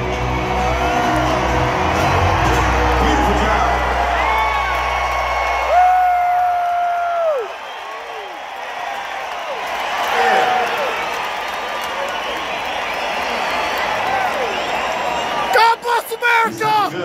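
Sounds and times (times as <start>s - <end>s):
crowd cheering and whooping: 0.0s - 17.0s.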